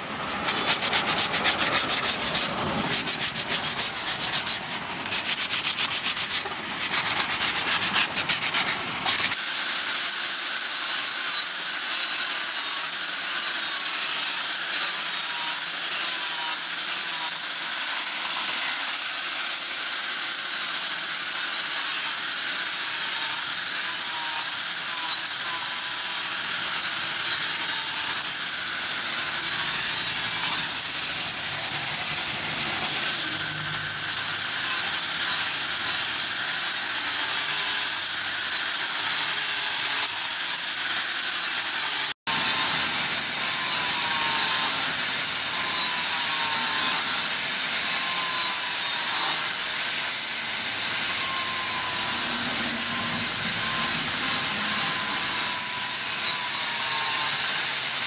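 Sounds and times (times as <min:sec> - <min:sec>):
angle grinder whining: 0:00.0 - 0:58.0.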